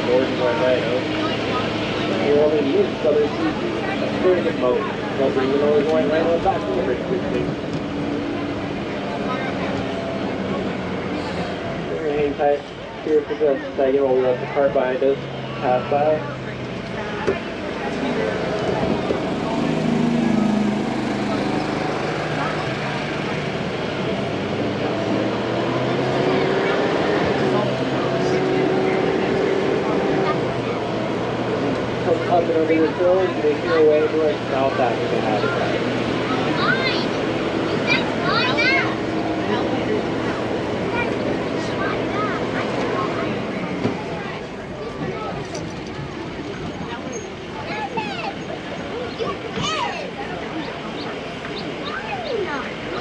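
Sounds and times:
indistinct passenger voices: 0.0 - 53.0
tram drive and tyres droning: 0.0 - 53.0.

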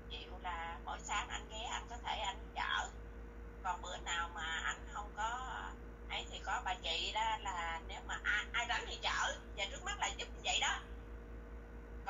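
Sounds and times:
conversation through telephone line: 3.6 - 10.9.

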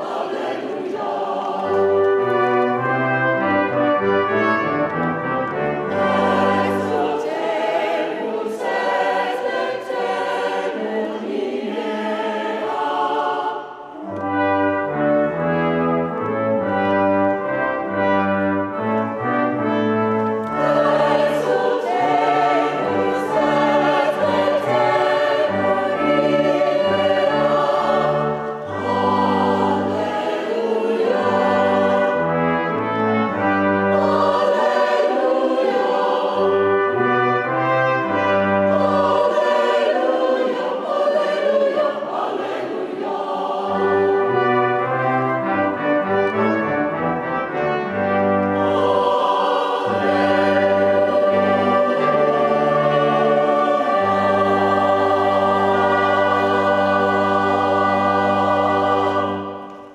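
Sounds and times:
brass accompaniment: 0.0 - 59.9
choir and congregation singing hymn: 0.0 - 59.9.

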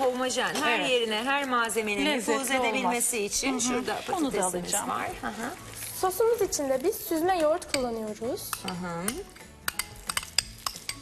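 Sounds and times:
utensils clinking in bowls: 0.0 - 11.0.

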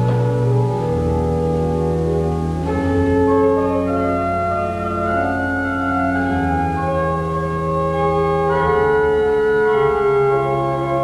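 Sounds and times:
pipe organ sustained chords: 0.0 - 11.0.

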